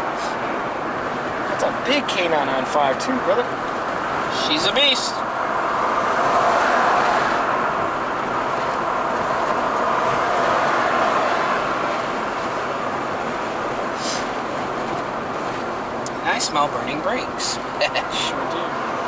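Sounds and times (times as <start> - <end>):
car road noise from inside: 0.0 - 19.0.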